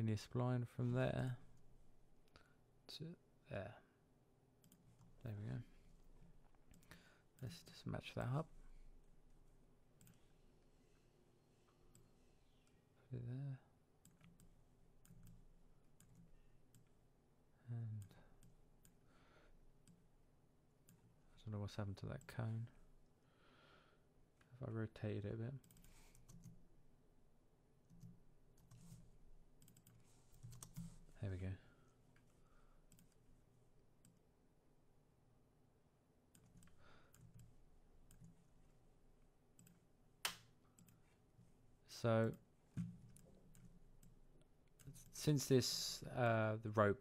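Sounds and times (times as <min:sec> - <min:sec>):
computer mouse clicks: 0:04.6 - 0:05.1, 0:10.0 - 0:10.3, 0:14.0 - 0:15.4, 0:25.6 - 0:26.6, 0:27.9 - 0:31.0, 0:32.9 - 0:33.2, 0:36.3 - 0:38.4, 0:39.5 - 0:41.0
computer mouse and keyboard clicks: 0:27.9 - 0:31.0.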